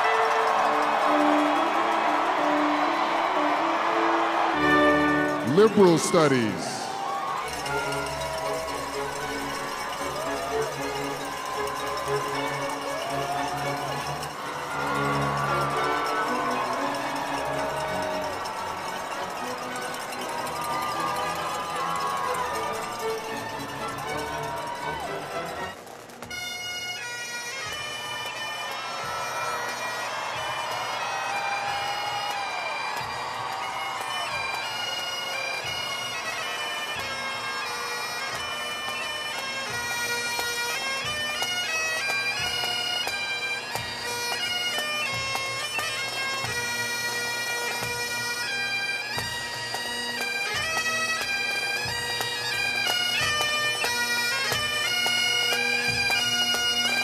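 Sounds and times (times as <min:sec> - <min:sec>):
bagpipes playing: 0:00.0 - 0:57.0.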